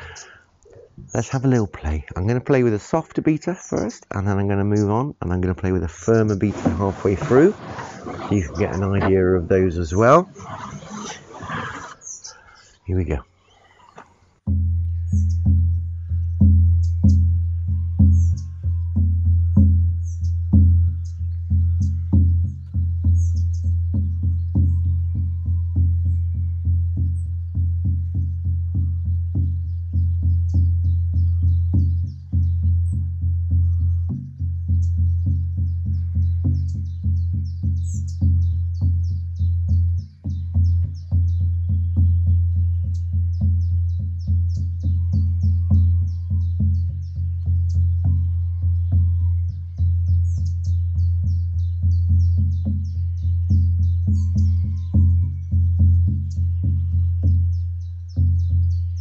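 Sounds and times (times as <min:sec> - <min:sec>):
frame drum beaten with soft beater: 0:14.4 - 0:59.0.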